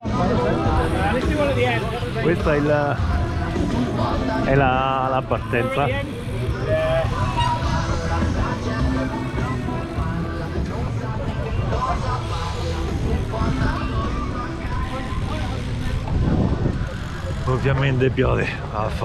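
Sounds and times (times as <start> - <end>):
wind rumbling on microphone: 6.2 - 18.2.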